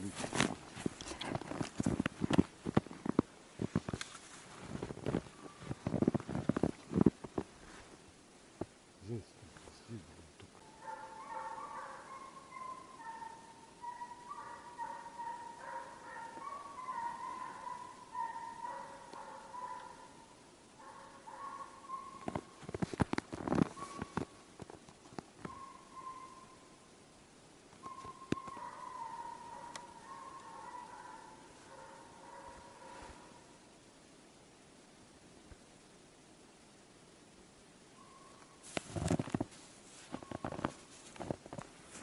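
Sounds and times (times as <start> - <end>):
hounds baying in distance: 10.6 - 24.3, 25.4 - 26.7, 27.8 - 33.6.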